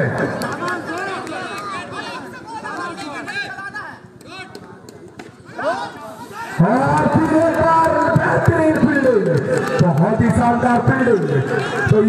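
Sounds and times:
crowd shouting and chattering: 0:00.0 - 0:12.0
man's loud voice: 0:06.6 - 0:12.0.

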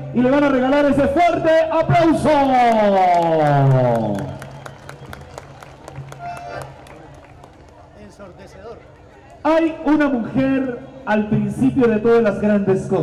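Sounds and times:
crowd applauding: 0:02.7 - 0:09.5.

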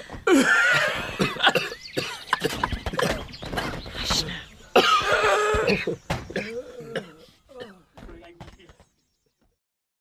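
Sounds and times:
man coughing: 0:00.3 - 0:03.3, 0:04.7 - 0:07.9.

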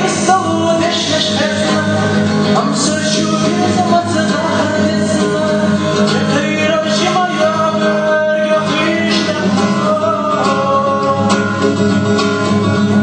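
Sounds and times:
guitar accompaniment: 0:00.0 - 0:13.0
person singing: 0:00.0 - 0:13.0.

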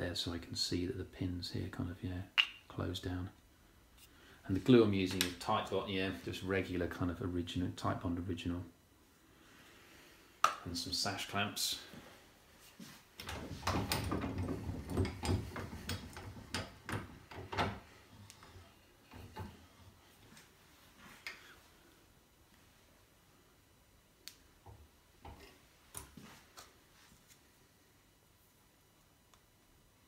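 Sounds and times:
wooden workpieces clattering: 0:13.3 - 0:17.8.

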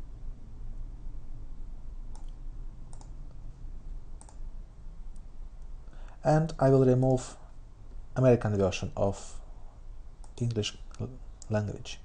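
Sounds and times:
computer mouse clicks: 0:02.1 - 0:03.3, 0:04.2 - 0:04.4.

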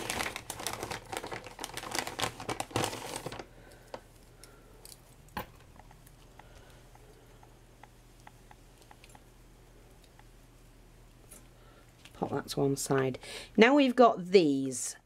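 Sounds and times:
wipes packet crinkling: 0:00.0 - 0:04.2.

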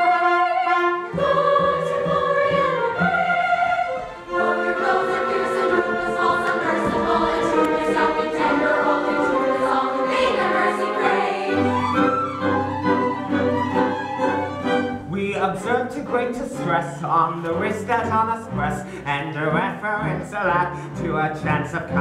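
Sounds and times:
chorus singing: 0:00.0 - 0:21.9
orchestra strings and woodwinds: 0:00.0 - 0:22.0.

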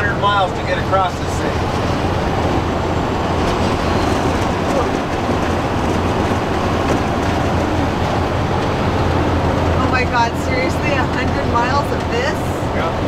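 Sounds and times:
bus engine drone: 0:00.0 - 0:13.0
road noise: 0:00.0 - 0:13.0.

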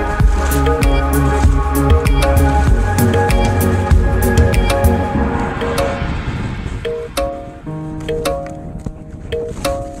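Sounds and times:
held chord-like notes: 0:00.0 - 0:10.0
sharp percussion hits: 0:01.9 - 0:08.8.

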